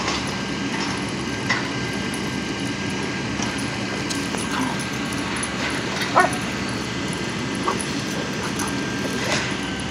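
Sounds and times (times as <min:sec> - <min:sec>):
dog barking: 0:06.0 - 0:06.6, 0:07.6 - 0:08.7.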